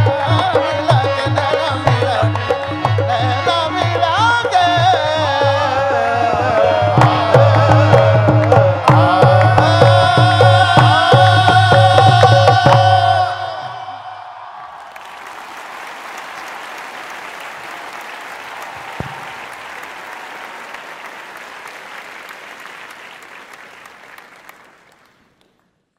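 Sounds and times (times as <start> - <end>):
qawwali music: 0.0 - 14.2
large audience applauding: 14.4 - 25.9.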